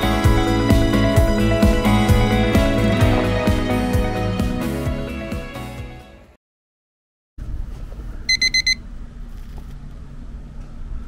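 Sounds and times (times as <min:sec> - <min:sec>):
high-pitched electronic beeps: 0:08.3 - 0:08.8.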